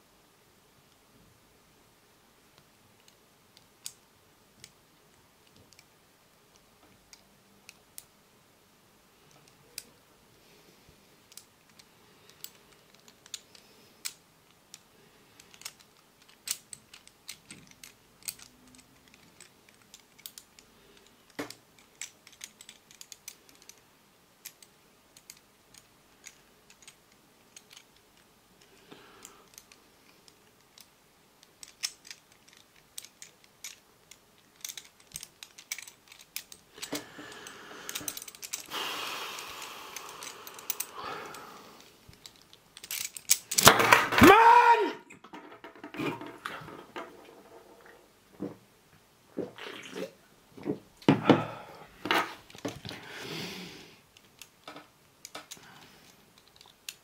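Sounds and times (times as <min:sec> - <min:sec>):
metal puzzle pieces clicking: 0:11.3 - 0:23.8, 0:24.4 - 0:38.7, 0:39.4 - 0:44.5, 0:54.1 - 0:57.0
metal puzzle rattling: 0:15.4 - 0:23.8, 0:24.4 - 0:28.2, 0:29.4 - 0:37.0, 0:37.9 - 0:38.7, 0:42.1 - 0:44.2.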